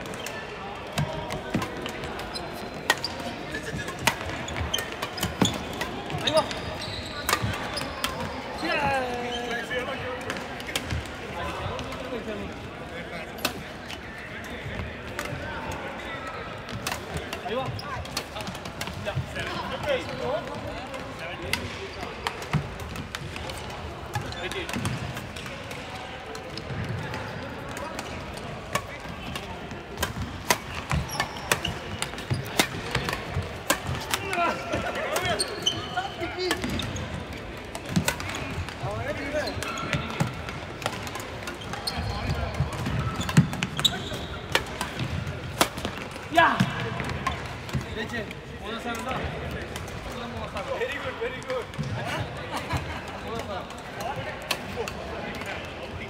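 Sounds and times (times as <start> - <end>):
murmur of voices: 0.0 - 56.0
racket hitting shuttlecock: 2.8 - 6.6, 27.6 - 35.4, 37.6 - 47.9.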